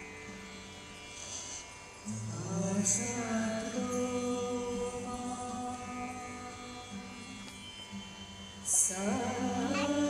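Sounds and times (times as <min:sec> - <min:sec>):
chant-like devotional singing: 0:02.1 - 0:10.0.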